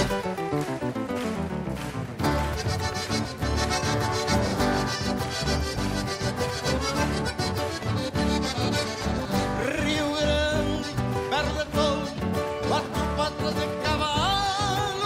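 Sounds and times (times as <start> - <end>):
accordion: 0.0 - 15.0
acoustic guitars: 0.0 - 15.0.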